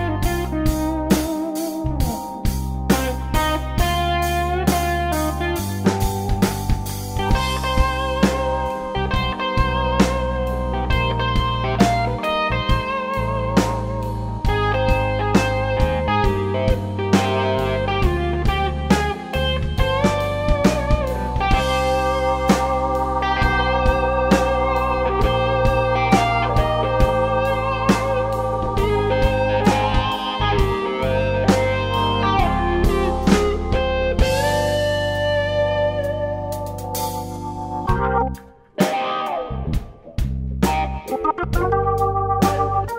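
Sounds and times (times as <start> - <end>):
steady drum beat: 0.0 - 13.0, 13.8 - 35.0
electric guitar lead lines: 0.0 - 42.9
organ chords: 0.0 - 42.9.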